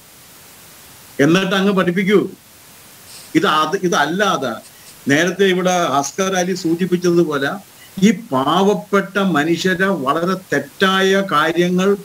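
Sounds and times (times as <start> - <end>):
background hiss: 0.0 - 12.0
man speaking: 1.2 - 2.4, 3.3 - 12.0.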